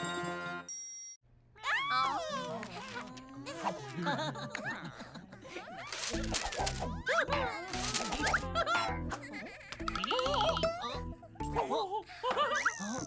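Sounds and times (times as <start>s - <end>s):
cartoon characters' sliding calls: 9.8s - 10.8s.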